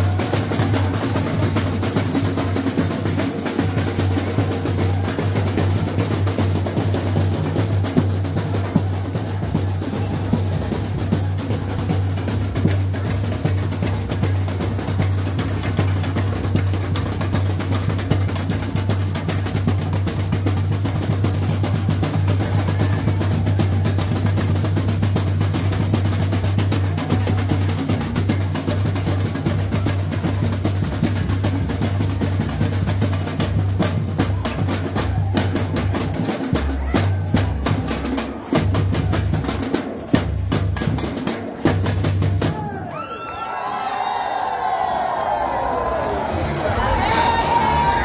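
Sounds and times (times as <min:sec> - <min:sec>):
percussion ensemble playing: 0:00.0 - 0:43.3, 0:44.0 - 0:48.0
bass drum: 0:45.7 - 0:48.0.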